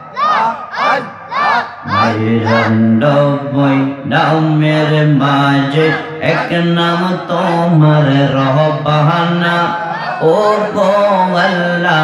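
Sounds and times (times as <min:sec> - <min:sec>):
man chanting melodically: 0:01.8 - 0:12.0.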